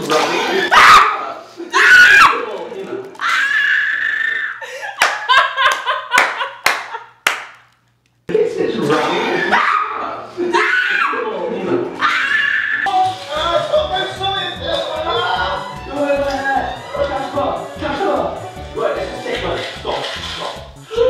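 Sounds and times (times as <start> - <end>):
women laughing hard: 4.4 - 7.2.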